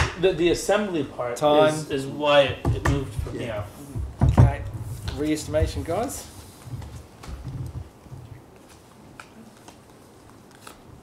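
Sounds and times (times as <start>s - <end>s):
dull knocks: 2.5s - 6.1s
cards being handled: 5.0s - 11.0s.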